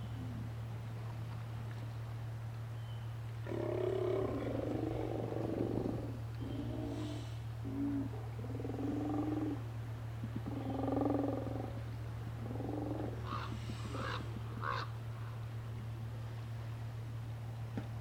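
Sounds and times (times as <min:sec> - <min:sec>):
steady low hum: 0:00.0 - 0:18.0
sea lions calling: 0:12.4 - 0:15.0.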